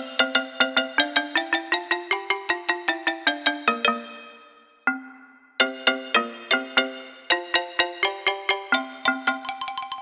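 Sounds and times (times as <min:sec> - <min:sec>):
digital keyboard notes: 0:00.0 - 0:10.0.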